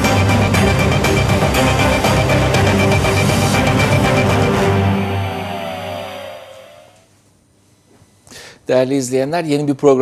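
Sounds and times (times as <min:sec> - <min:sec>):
dramatic music final chord: 0:00.0 - 0:07.1
falling pitch sweep: 0:00.2 - 0:07.2.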